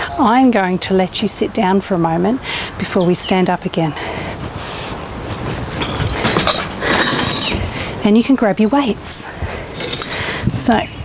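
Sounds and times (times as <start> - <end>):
metal chair frame rattling and scraping: 5.2 - 7.8, 9.6 - 10.2.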